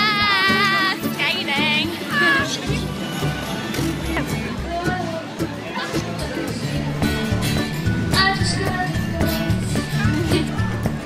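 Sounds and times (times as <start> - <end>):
music with low bass notes: 0.3 - 11.0.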